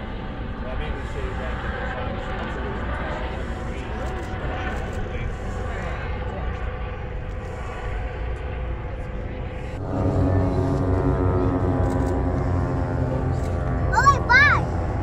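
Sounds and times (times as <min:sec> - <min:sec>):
propeller plane engines droning: 0:00.0 - 0:15.0.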